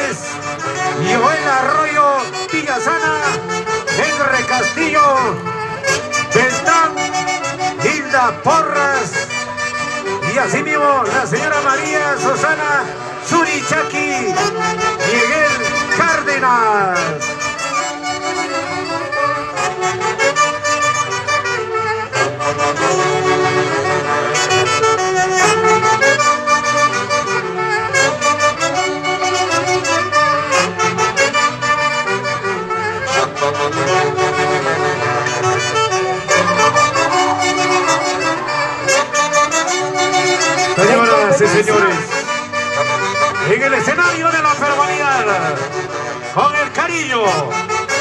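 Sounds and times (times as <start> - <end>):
folk dance tune with saxophones: 0.0 - 48.0.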